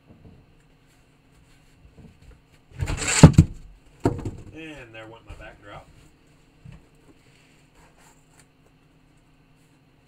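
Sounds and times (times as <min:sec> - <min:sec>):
rustling scrape: 0:02.8 - 0:03.5.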